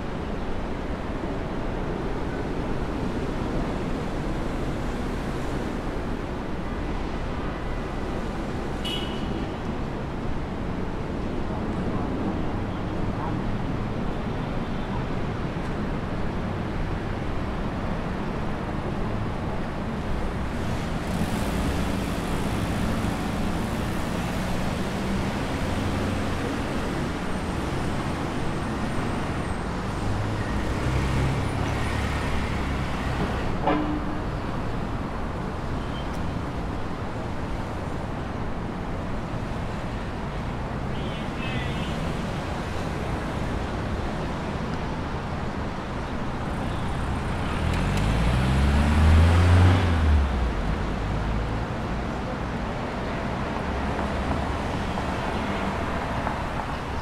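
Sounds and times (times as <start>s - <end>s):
city street traffic: 0.0s - 57.0s.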